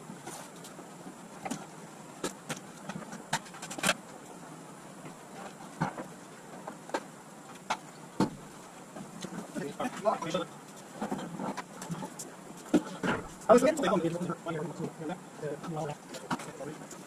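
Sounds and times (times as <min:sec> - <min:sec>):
low background noise: 0:00.0 - 0:17.0
boxes knocking and clunking: 0:07.7 - 0:09.7.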